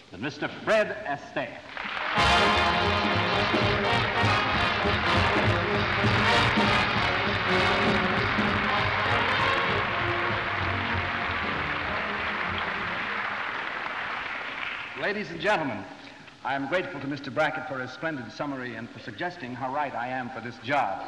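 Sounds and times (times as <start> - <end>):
audience applause: 1.7 - 15.5
orchestra playing: 2.1 - 14.3.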